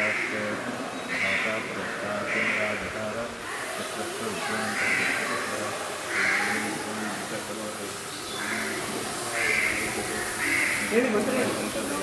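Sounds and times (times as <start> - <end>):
bird cawing: 0.0 - 3.7, 4.4 - 7.6, 8.2 - 11.6.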